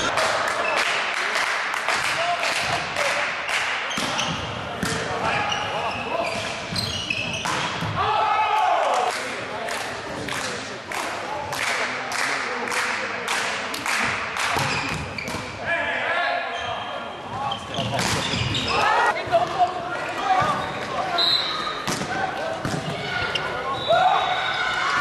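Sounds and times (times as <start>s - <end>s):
volleyball hits and thumps: 3.9s - 5.5s, 6.4s - 8.1s, 14.0s - 15.5s, 21.8s - 23.0s
players shouting: 7.9s - 9.1s, 18.3s - 25.0s.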